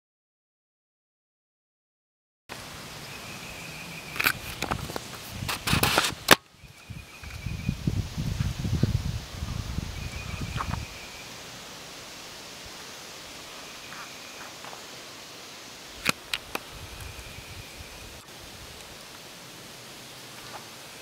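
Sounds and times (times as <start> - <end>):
faint hiss: 2.5 - 21.0.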